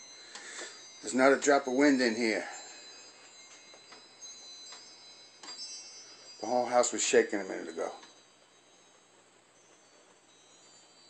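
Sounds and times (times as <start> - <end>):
bar chimes tinkling: 0.0 - 11.0.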